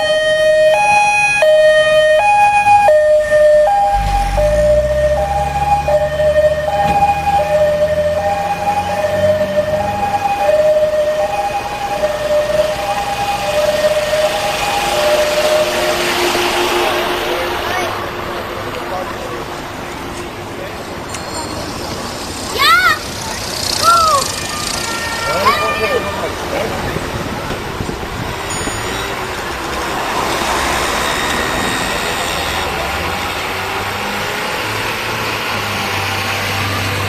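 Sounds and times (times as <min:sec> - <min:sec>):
two-tone siren: 0:00.0 - 0:17.7, 0:22.6 - 0:27.0, 0:30.2 - 0:36.8
truck engine pulling away: 0:00.0 - 0:37.0
steady lower tone: 0:03.2 - 0:06.8
rushing noise: 0:03.6 - 0:05.9, 0:12.8 - 0:35.8.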